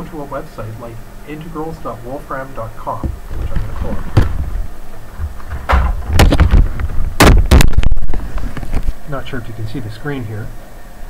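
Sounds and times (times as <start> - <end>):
microphone rumbling and rubbing: 2.9 - 9.0
microphone handling knocks: 3.0 - 8.9.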